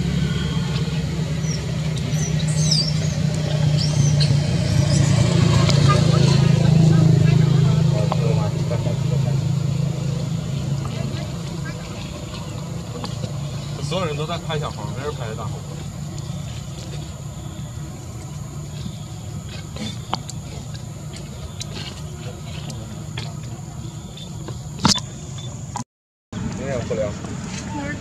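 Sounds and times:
high chirps: 0.0 - 6.7
low engine hum: 0.0 - 25.8, 26.4 - 28.0.

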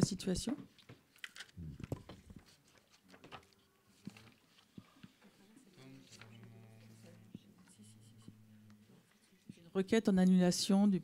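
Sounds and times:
paper sheets rustling: 1.1 - 7.0.

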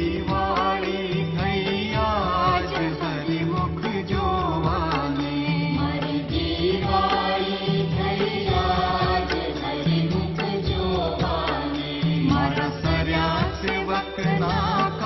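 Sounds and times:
devotional chanting: 0.0 - 15.0
light percussive strikes: 0.0 - 15.0.

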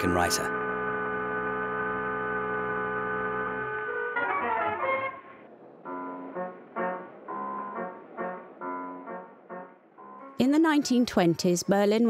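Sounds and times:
sustained chord drone: 0.0 - 4.9.

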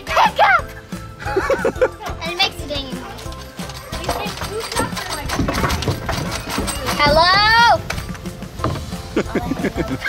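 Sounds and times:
background music: 0.0 - 10.0
children's voices: 2.0 - 7.9.

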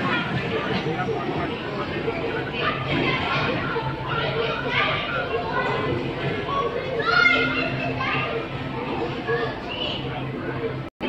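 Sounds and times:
children's voices chattering: 0.0 - 10.9
child's high voice: 2.6 - 10.2.

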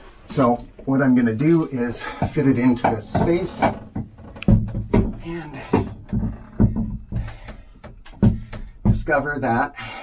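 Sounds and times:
dull knocks and bumps of metal: 1.9 - 9.6.

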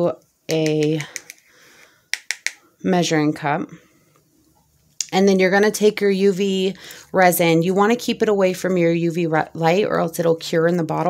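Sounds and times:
stick tapping plastic cup: 2.1 - 2.6.

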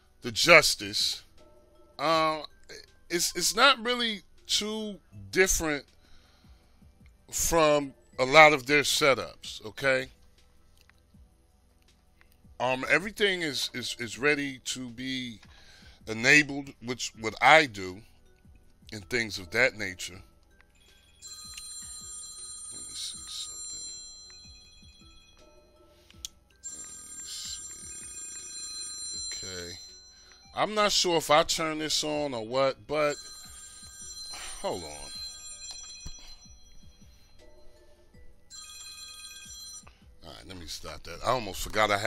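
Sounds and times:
electronic ringing tone: 20.8 - 31.1, 32.9 - 40.3.

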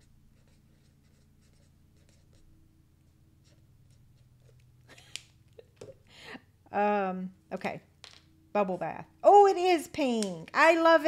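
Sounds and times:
felt-tip marker scratching on paper: 0.0 - 2.5
steady low hum: 0.0 - 11.0.

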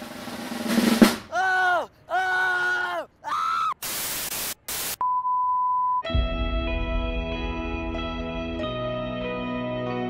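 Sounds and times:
drawn-out vocal cries: 1.3 - 3.8
static hiss bursts: 3.8 - 5.0.

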